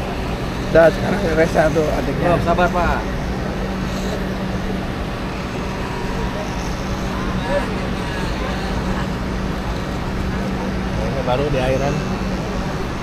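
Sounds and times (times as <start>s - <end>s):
electric hair clipper buzzing: 0.0s - 13.0s
faint voices: 0.0s - 13.0s.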